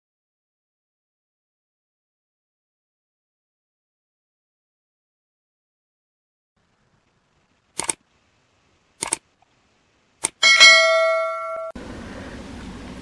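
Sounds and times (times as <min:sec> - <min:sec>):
faint room hiss: 0:06.6 - 0:13.0
short clicks: 0:07.8 - 0:08.0, 0:09.0 - 0:09.3, 0:10.2 - 0:10.4
bright metallic chime: 0:10.4 - 0:11.8.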